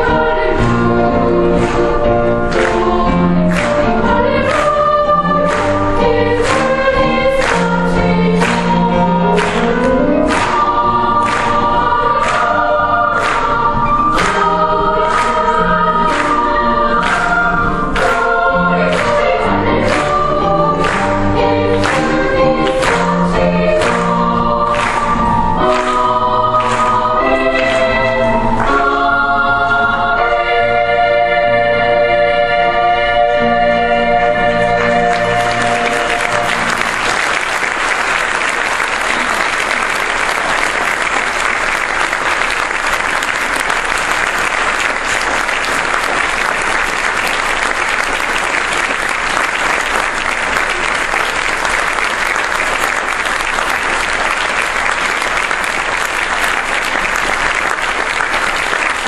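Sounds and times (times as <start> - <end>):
children's choir singing: 0.0 - 59.0
piano accompaniment: 0.0 - 59.0.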